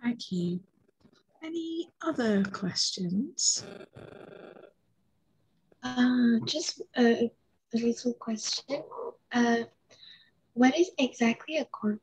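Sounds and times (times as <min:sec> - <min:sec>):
woman speaking: 0:00.0 - 0:00.6, 0:01.4 - 0:03.6, 0:05.8 - 0:09.8, 0:10.6 - 0:12.0.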